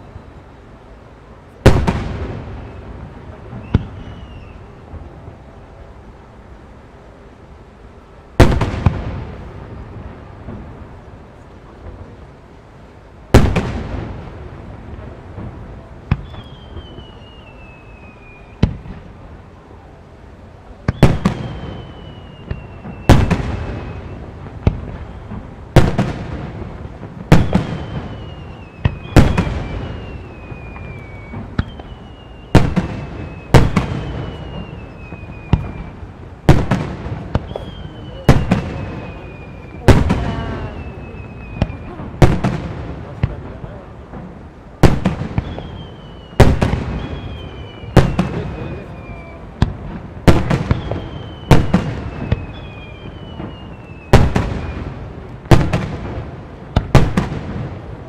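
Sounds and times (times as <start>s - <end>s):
whistles falling in pitch: 3.6s - 4.7s, 16.2s - 18.7s, 20.9s - 24.2s, 27.6s - 36.0s, 37.4s - 42.0s, 45.4s - 49.6s, 50.6s - 55.0s.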